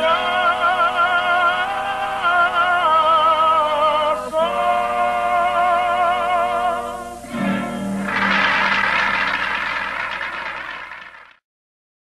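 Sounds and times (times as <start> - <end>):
audience applauding: 8.0 - 11.4.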